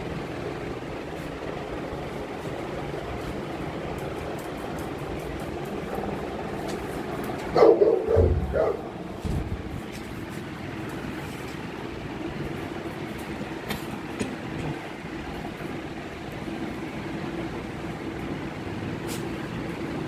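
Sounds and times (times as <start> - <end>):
steady background noise: 0.0 - 20.0
dog barking: 7.5 - 8.9.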